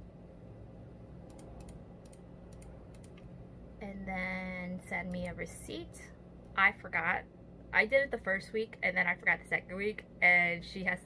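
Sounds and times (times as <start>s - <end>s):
low steady hum: 0.0s - 11.0s
keyboard typing: 1.2s - 3.2s.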